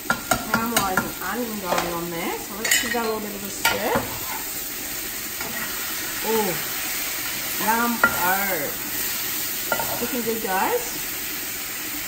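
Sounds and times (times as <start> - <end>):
onions sizzling in a pan: 0.0 - 12.0.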